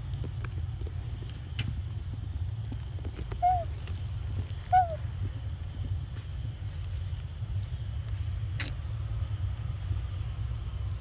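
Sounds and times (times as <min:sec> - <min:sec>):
steady low rumble: 0:00.0 - 0:11.0
short animal calls: 0:03.4 - 0:03.7, 0:04.7 - 0:05.0.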